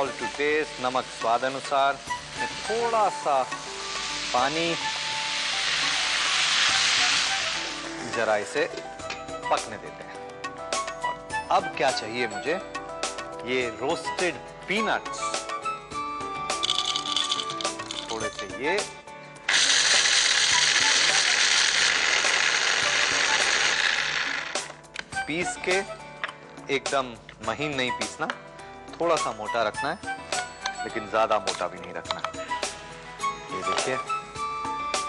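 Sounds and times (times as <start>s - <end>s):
water sizzling in hot pan: 0.0s - 8.6s, 19.5s - 24.7s
background music: 0.0s - 35.0s
electric food chopper grinding peanuts: 19.5s - 24.8s.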